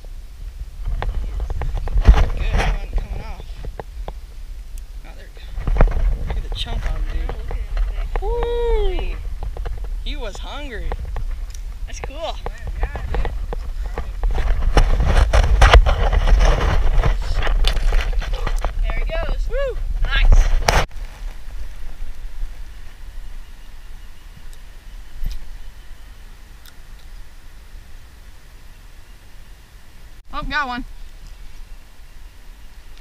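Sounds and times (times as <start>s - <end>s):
quiet outdoor background: 0.0s - 33.0s
camera handling rumble and knocks: 0.8s - 4.2s, 5.5s - 10.0s, 10.8s - 21.1s.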